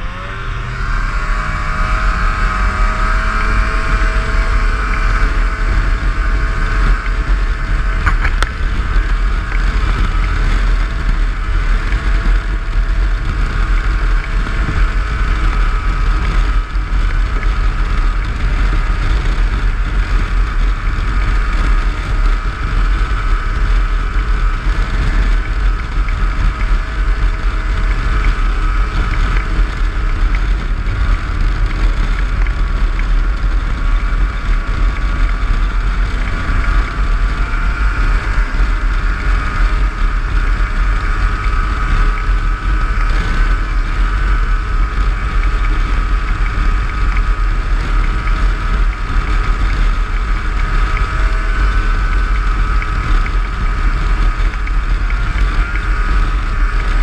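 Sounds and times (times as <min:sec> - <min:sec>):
snowmobile engine drone: 0:00.0 - 0:57.0.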